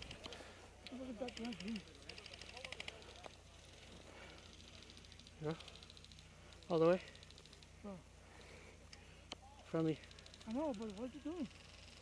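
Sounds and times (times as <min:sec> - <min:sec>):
distant airsoft rifle bursts: 0:00.0 - 0:08.6, 0:09.7 - 0:12.0.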